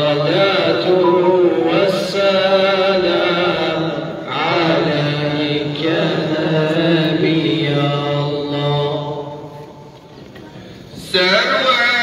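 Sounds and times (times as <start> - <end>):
man chanting a religious recitation: 0.0 - 1.0, 1.6 - 9.4, 11.0 - 12.0.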